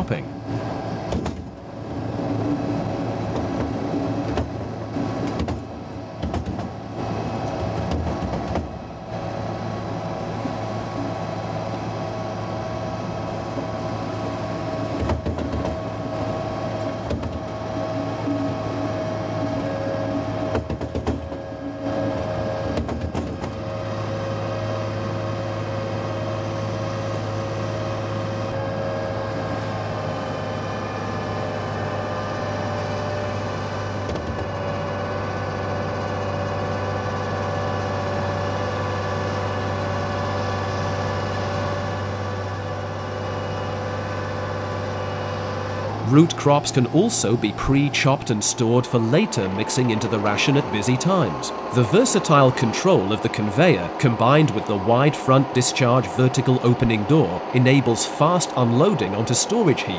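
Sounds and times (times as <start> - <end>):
feed mixer augers droning: 0.0 - 59.9.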